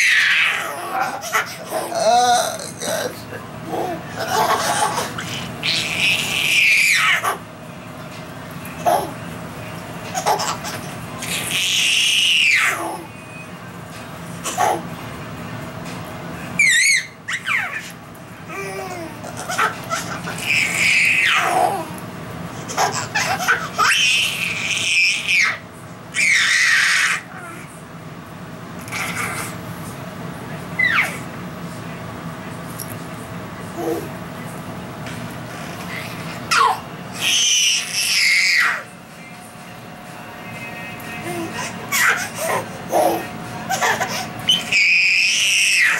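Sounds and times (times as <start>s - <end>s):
baby squealing: 0.0s - 3.1s, 3.7s - 7.4s, 11.2s - 13.0s, 16.6s - 17.9s, 19.4s - 21.8s, 22.7s - 25.6s, 26.2s - 27.6s, 30.8s - 31.2s, 36.5s - 38.9s, 41.3s - 45.9s.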